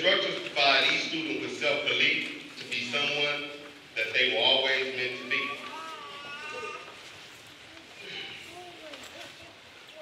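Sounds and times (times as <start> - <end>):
faint drawn-out voice in hall: 0.0 - 10.0
low room murmur: 0.0 - 10.0.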